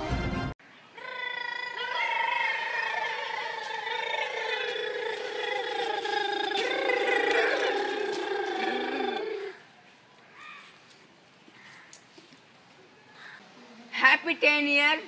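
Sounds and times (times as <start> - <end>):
children's high-pitched cry: 0.9 - 9.6.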